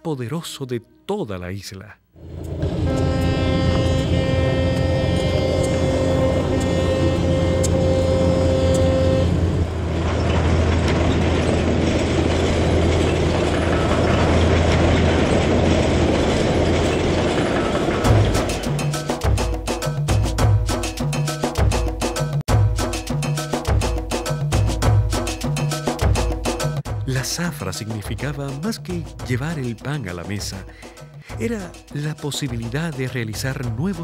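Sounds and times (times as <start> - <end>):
train cars rolling past: 2.2 - 19.6
train horn: 2.5 - 9.9.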